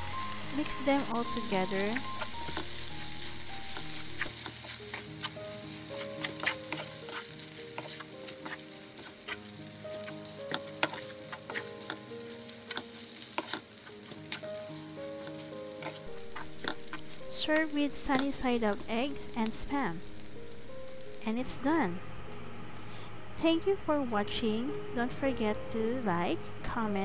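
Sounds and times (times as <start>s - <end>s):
rice sizzling in a frying pan: 0.0s - 21.6s
spatula scraping a pan: 0.4s - 18.9s.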